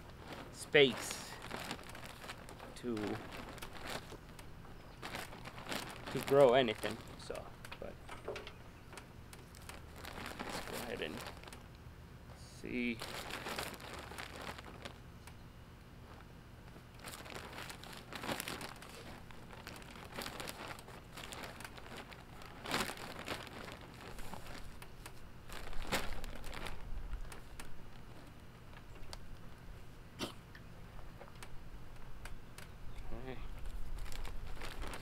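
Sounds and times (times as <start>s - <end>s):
plastic bag crinkling: 0.0s - 7.9s, 9.4s - 11.7s, 12.7s - 15.0s, 16.1s - 29.3s, 33.5s - 35.0s.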